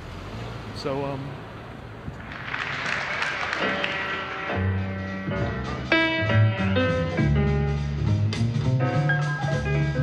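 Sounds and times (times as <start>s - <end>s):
guitar music: 3.6s - 10.0s.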